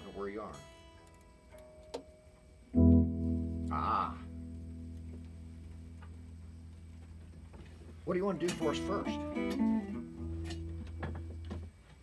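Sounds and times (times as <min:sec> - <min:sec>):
faint ticks of guitar handling: 0:00.0 - 0:03.6, 0:04.3 - 0:12.0
guitar amplifier hum: 0:00.0 - 0:12.0.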